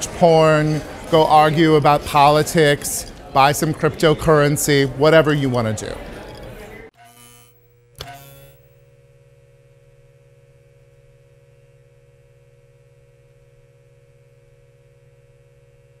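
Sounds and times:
buzzing neon hum: 0.0 - 16.0.

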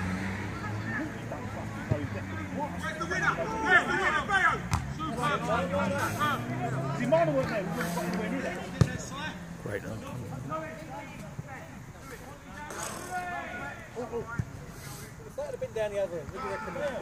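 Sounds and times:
distant shouts of players: 0.3 - 7.8, 12.5 - 14.6, 16.2 - 17.0
football being kicked: 4.7 - 4.9.

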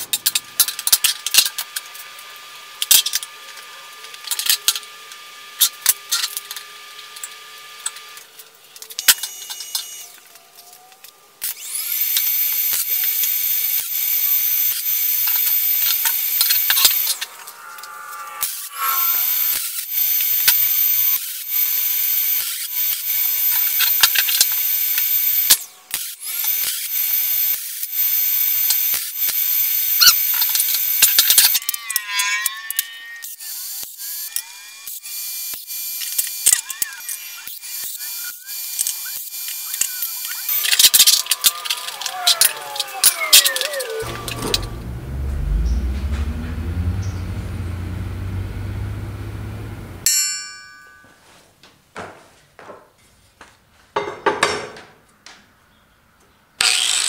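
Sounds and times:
welder arc crackling and hissing: 0.0 - 31.6
metal parts clinking and scraping: 40.5 - 44.6.

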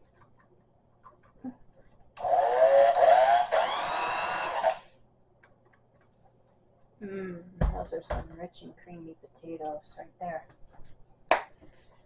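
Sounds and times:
electric hand mixer whining: 2.2 - 4.8.

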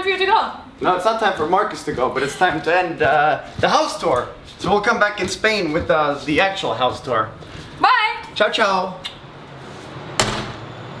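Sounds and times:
door shutting with a bang: 10.2 - 10.9.

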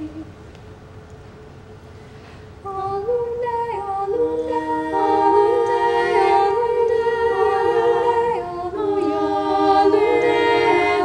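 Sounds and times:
women's choir singing a cappella: 2.6 - 11.0.

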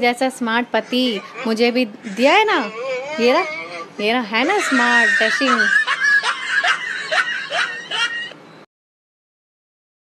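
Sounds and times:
woman laughing in short bursts: 4.5 - 8.3.

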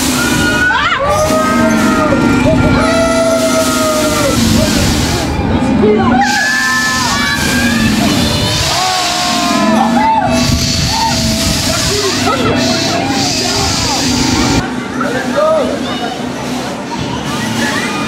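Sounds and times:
low rumbling of ride: 0.0 - 18.0
voices: 0.0 - 18.0.

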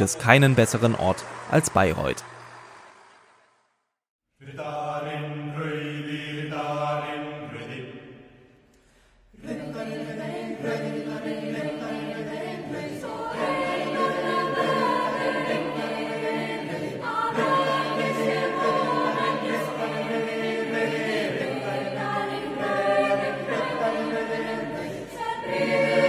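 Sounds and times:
choir singing held chords: 0.0 - 3.6, 4.4 - 26.0.

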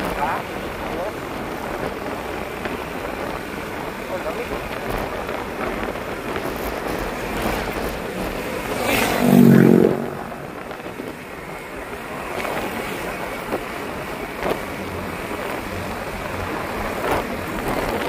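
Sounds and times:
wind rushing over microphone: 0.0 - 18.0
brief loud pitched sound: 9.1 - 10.6.

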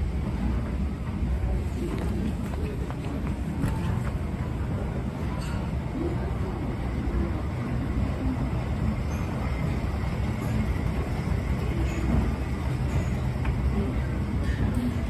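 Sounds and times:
faint background voices: 0.3 - 15.0.

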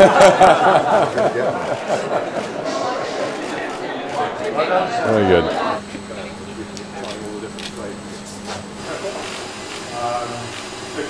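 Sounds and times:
group laughing and chatting: 0.0 - 11.0.

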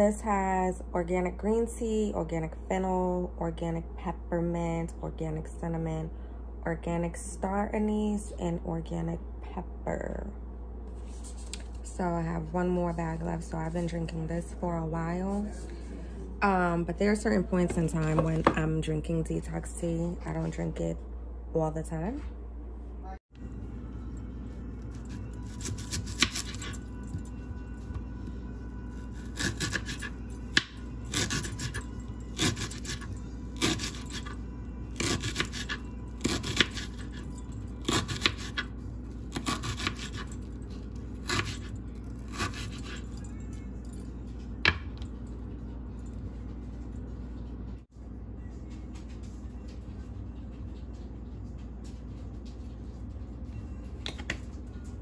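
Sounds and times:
background music: 23.4 - 46.2
knife slicing onion on board: 25.5 - 26.7, 29.2 - 31.8, 32.4 - 34.3, 35.0 - 37.2, 37.8 - 38.7, 39.3 - 40.3, 41.2 - 41.6, 42.2 - 43.0.

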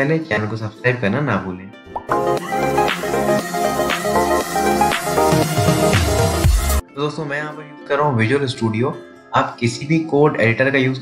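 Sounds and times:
electronic jingle with steady beat: 2.1 - 6.8.

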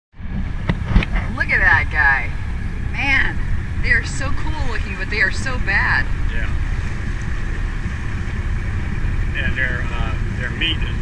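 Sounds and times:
boat rumbling at sea: 0.1 - 11.0
voices exclaiming: 3.0 - 6.6, 9.4 - 11.0.

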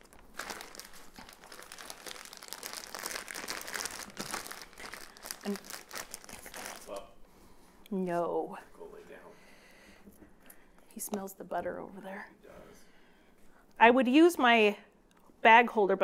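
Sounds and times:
plastic bag crinkling: 0.0 - 7.1.

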